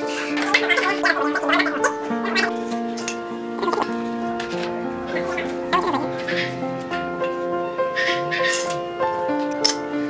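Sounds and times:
background music held notes: 0.0 - 10.0.

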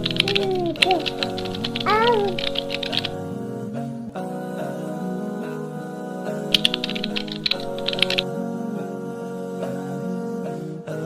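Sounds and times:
computer keyboard typing: 0.0 - 3.2, 6.5 - 8.2
soft instrumental music: 0.0 - 11.0.

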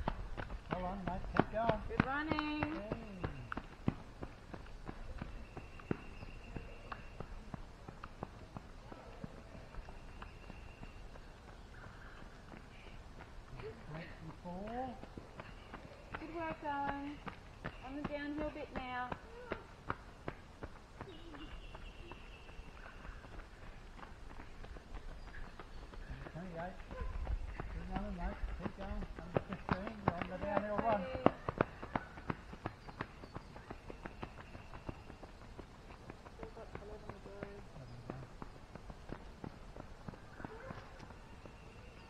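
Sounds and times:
running footsteps on gravel: 0.0 - 42.0.

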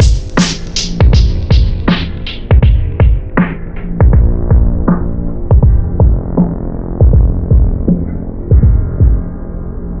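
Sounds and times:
deep kick drums: 0.0 - 9.4
held low bass: 0.0 - 10.0
hip-hop beat: 0.0 - 10.0.

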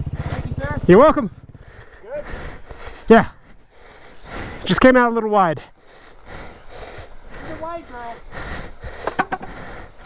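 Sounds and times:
man making wordless exclamations: 2.0 - 2.4.

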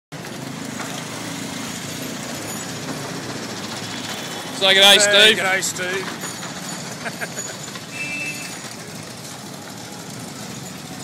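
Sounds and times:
street traffic: 0.1 - 11.0
vehicle engine running: 0.1 - 11.0.

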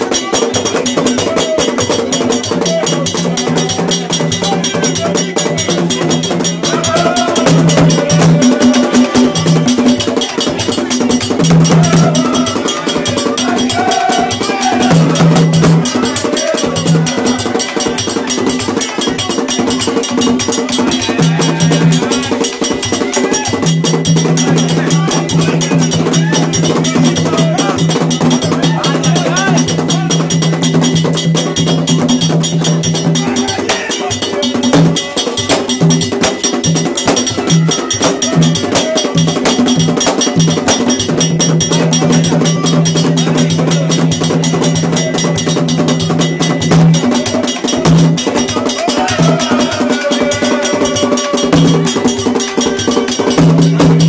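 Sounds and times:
fast hand drumming: 0.0 - 54.0
ringing metallic beat: 0.0 - 54.0.

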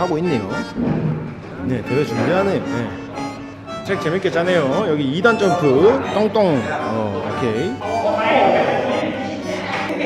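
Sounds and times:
lively chatter of people: 0.0 - 10.0.

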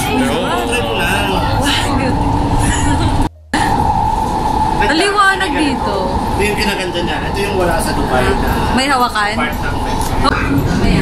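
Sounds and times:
train rumbling inside carriage: 0.0 - 11.0.

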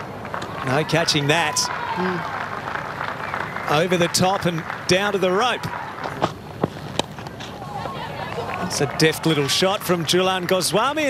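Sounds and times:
background crowd noise: 0.0 - 11.0.

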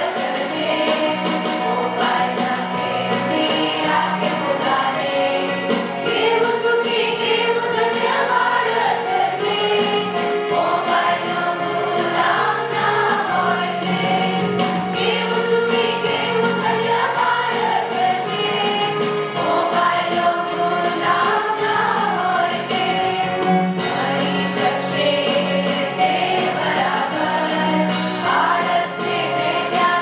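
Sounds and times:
accompaniment with steady beat: 0.0 - 30.0
choir singing: 0.0 - 30.0.

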